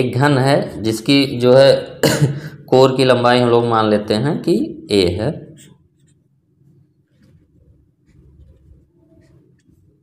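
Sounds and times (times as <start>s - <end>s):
man speaking: 2.7s - 5.7s
marker writing on paper: 7.1s - 10.0s.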